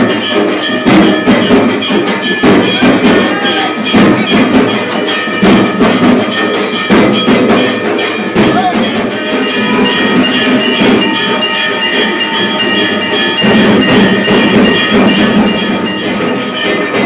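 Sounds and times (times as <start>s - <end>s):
drum beats: 0.0s - 17.0s
temple bells ringing rapidly: 0.0s - 17.0s.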